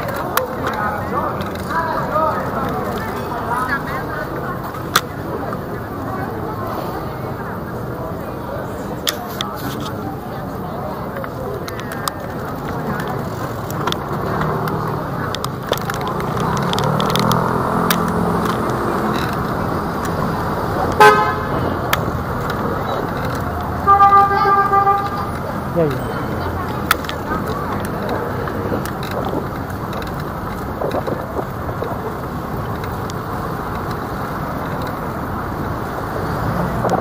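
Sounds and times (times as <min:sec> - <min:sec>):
road traffic: 0:00.0 - 0:37.0
vehicle engine passing: 0:12.8 - 0:37.0
car horn: 0:20.9 - 0:21.8, 0:23.8 - 0:25.4.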